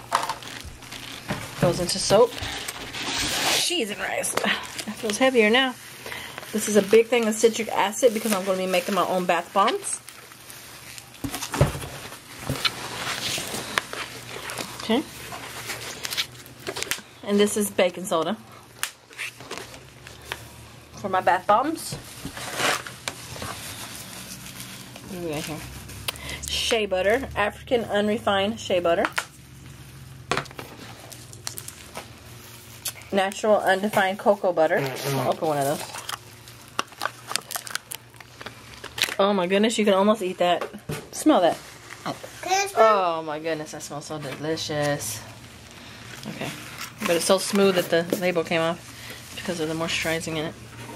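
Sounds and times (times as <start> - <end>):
plastic and packing rustling: 0.0 - 50.9.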